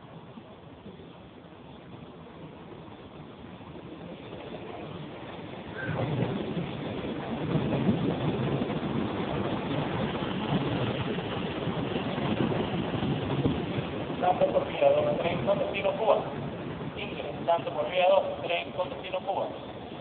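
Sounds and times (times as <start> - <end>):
electric train rolling past: 0.0 - 20.0.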